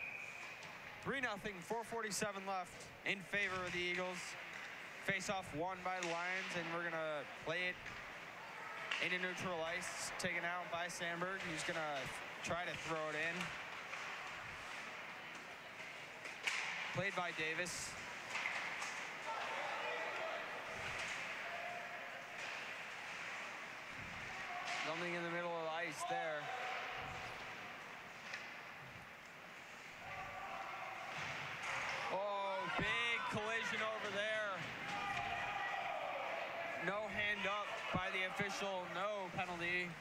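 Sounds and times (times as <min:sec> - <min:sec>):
players shouting: 0:19.0 - 0:22.6, 0:24.2 - 0:27.5, 0:30.0 - 0:39.6.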